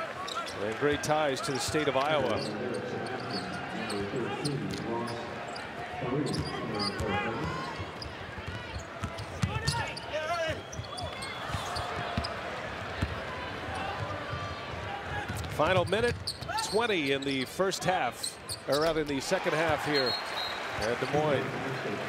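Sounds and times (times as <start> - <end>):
sneakers squeaking: 0.2 - 1.0, 1.7 - 12.4, 15.2 - 17.4, 18.2 - 19.1.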